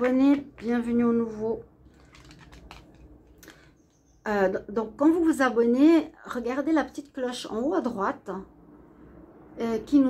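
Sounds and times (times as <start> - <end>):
cards being handled: 2.0 - 3.7.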